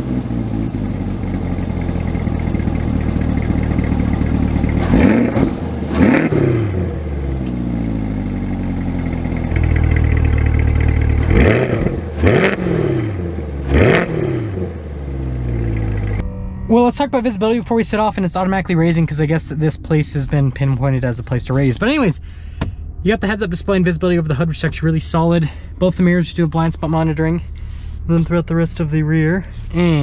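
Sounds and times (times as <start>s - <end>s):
engine revving: 0.0s - 16.4s
car engine idling: 0.0s - 30.0s.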